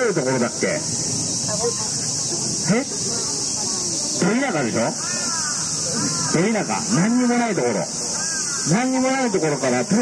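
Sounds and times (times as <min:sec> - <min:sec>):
man speaking over loudspeaker: 0:06.3 - 0:08.0, 0:08.7 - 0:10.0.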